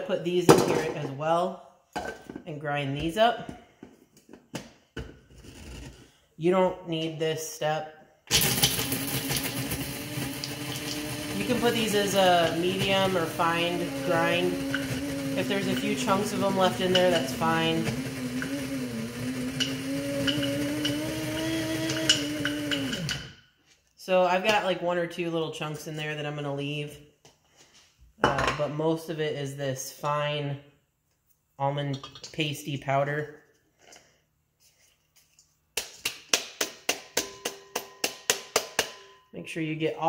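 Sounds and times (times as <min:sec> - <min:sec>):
coffee grinder grinding nuts: 0:08.3 - 0:23.3.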